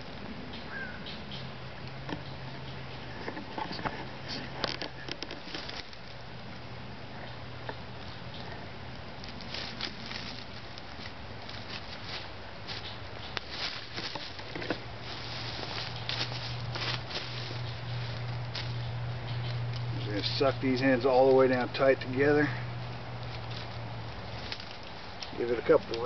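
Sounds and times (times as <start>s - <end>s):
low steady hum: 0.0s - 26.0s
cord scraping on wood: 3.0s - 6.1s, 9.3s - 21.7s.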